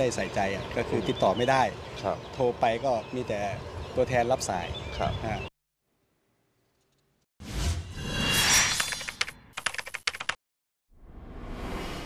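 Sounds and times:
whoosh: 7.4s - 9.5s.

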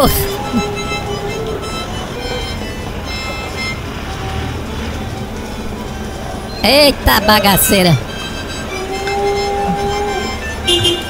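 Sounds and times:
motorcycle passing: 0.0s - 6.6s, 8.0s - 11.0s
background music with held notes: 0.0s - 11.0s
car passing: 0.3s - 11.0s.

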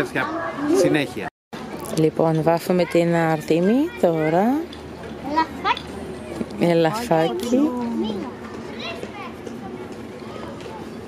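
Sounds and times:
children chattering: 0.0s - 1.3s, 2.6s - 11.0s
woman's voice: 6.6s - 8.1s.

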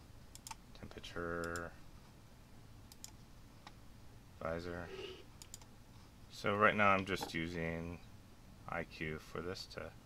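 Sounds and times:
computer mouse clicks: 0.3s - 0.6s, 2.9s - 3.8s, 5.4s - 5.7s.

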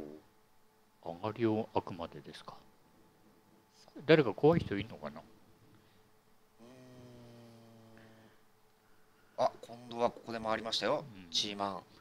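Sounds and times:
man humming: 6.6s - 8.4s, 9.4s - 10.3s.

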